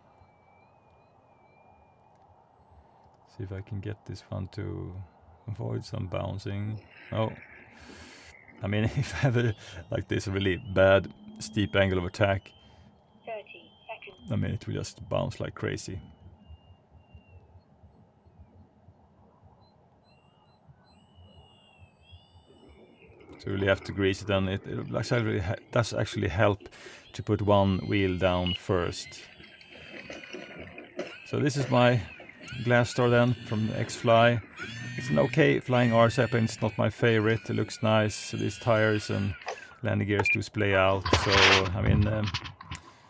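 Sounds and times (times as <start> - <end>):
distant model airplane motor whine: 0.0 - 3.0, 16.1 - 17.6, 19.9 - 23.8, 26.9 - 39.8
high whistling chirps: 0.0 - 43.0.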